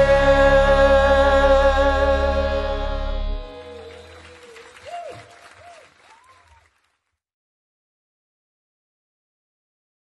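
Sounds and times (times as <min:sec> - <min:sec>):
audience applause: 0:03.6 - 0:07.1.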